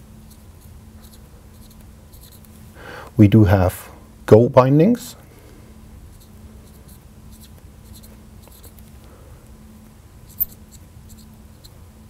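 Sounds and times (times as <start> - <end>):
low steady hum: 0.0 - 12.0
marker squeaking on glass: 1.0 - 2.4, 6.1 - 8.8, 10.3 - 11.8.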